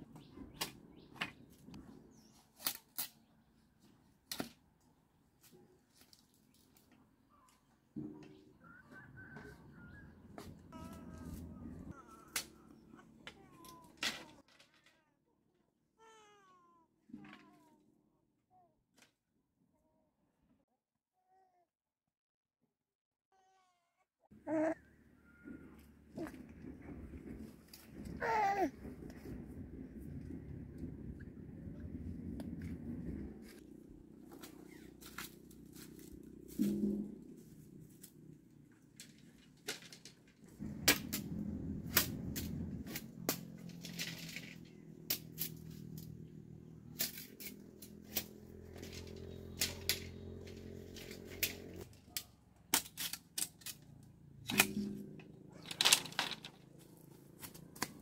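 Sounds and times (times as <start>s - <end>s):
bamboo strips clacking: 2.6s - 3.2s, 46.9s - 56.6s, 57.3s - 58.0s
bird calls: 7.3s - 13.0s
baby cooing: 10.7s - 14.0s, 24.4s - 24.8s, 28.1s - 28.7s.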